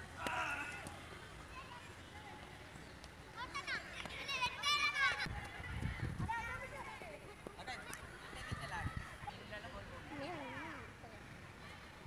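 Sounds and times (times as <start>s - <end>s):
children shouting: 0.2s - 1.0s.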